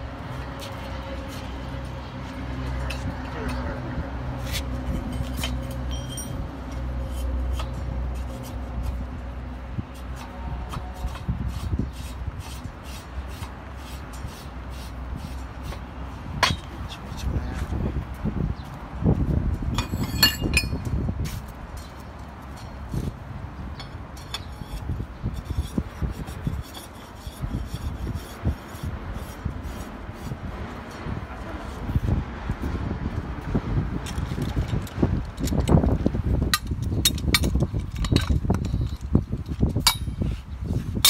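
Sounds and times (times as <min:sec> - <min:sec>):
wind buffeting microphone: 0:00.0 - 0:41.0
gloved hand scraping steel tube: 0:04.4 - 0:17.3, 0:23.8 - 0:32.0, 0:36.6 - 0:41.0.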